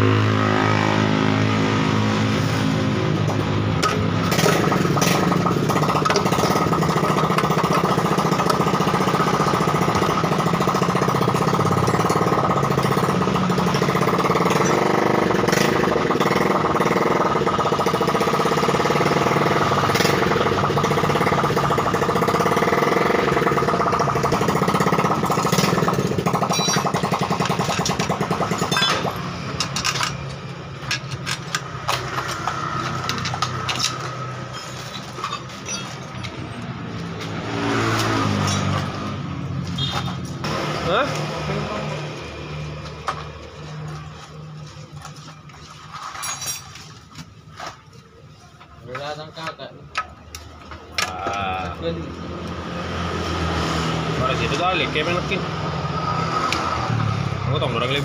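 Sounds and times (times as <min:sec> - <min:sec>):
motorcycle engine running: 0:00.0 - 0:33.8.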